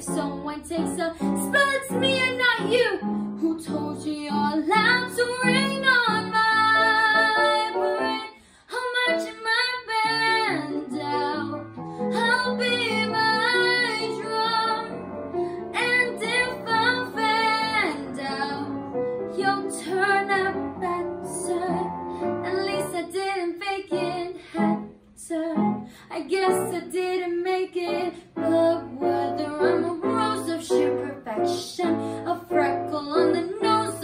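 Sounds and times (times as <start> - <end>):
young woman singing: 0.0 - 15.0, 15.6 - 34.0
instrumental accompaniment: 10.3 - 22.8.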